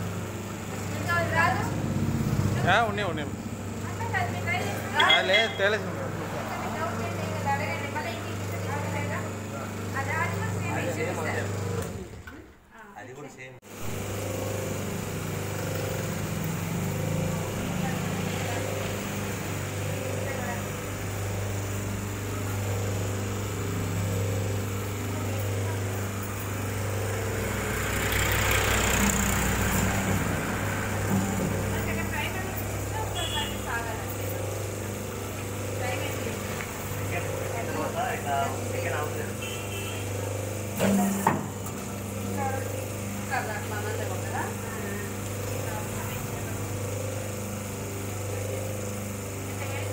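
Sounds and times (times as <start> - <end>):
machine motor humming: 0.0 - 12.6, 13.7 - 49.9.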